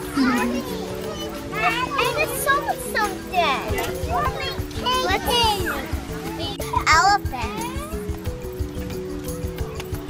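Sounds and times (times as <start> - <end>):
children chattering: 0.0 - 8.3
music with held notes: 0.0 - 10.0.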